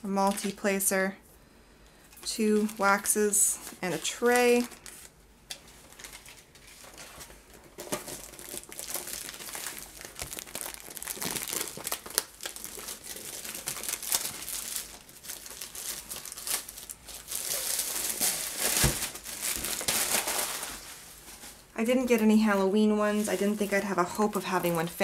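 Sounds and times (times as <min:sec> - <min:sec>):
plastic sleeve crinkling: 0:02.2 - 0:25.0.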